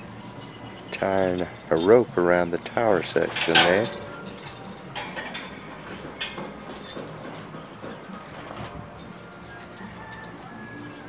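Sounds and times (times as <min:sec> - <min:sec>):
bird calls: 0:00.0 - 0:05.0, 0:05.6 - 0:11.0
faint music: 0:00.0 - 0:11.0.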